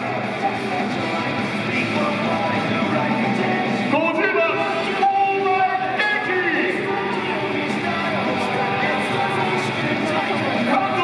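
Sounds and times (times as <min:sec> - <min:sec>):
public address held tones: 0:03.9 - 0:06.8.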